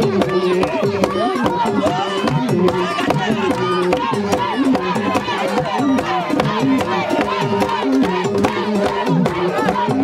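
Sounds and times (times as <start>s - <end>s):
many voices singing together: 0.0s - 10.0s.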